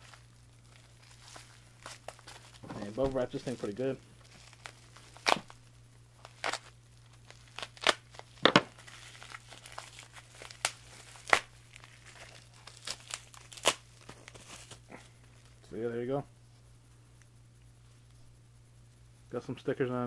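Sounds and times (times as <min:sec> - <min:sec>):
packaging crinkling and tearing: 0:00.0 - 0:05.6, 0:06.2 - 0:15.6.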